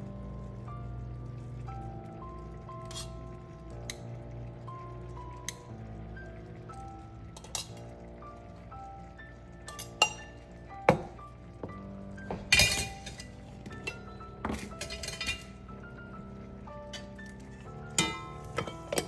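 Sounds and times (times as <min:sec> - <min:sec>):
soft background music: 0:00.0 - 0:19.0
metal tongs clinking on steel jars: 0:07.4 - 0:07.8, 0:09.7 - 0:10.3, 0:12.5 - 0:15.6, 0:17.9 - 0:19.0.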